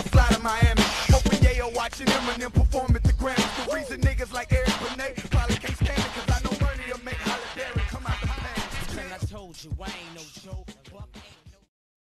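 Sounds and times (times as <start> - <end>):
hip hop vocal over drum beat: 0.0 - 11.7.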